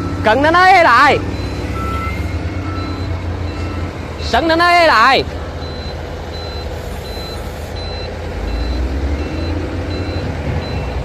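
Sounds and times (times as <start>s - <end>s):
engine humming: 0.0s - 11.0s
voice alert: 0.2s - 1.3s, 4.2s - 5.3s.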